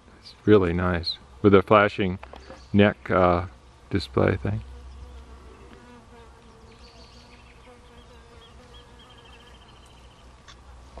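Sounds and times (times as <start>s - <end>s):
bee buzzing: 3.3s - 10.4s.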